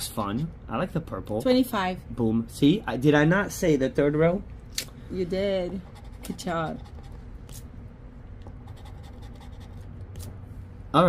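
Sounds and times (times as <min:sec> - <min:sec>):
coin scratching lottery ticket: 0:05.8 - 0:07.6, 0:08.6 - 0:10.3.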